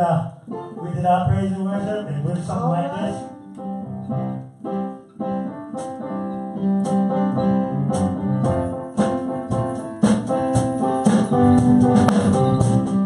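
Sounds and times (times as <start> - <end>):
electric keyboard gospel chords: 0.0 - 13.0.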